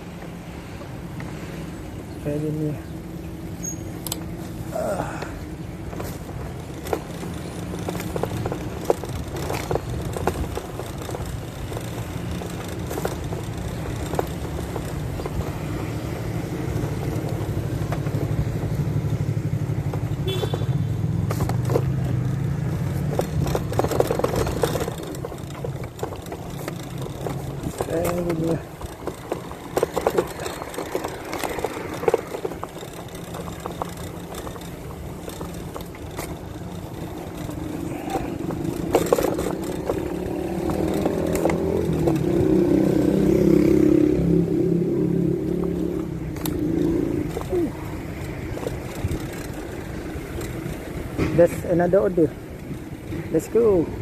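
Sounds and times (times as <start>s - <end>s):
road traffic: 0.0s - 54.0s.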